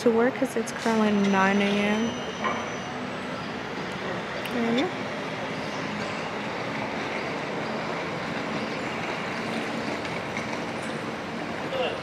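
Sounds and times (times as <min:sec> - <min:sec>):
city traffic passing: 0:00.0 - 0:12.0.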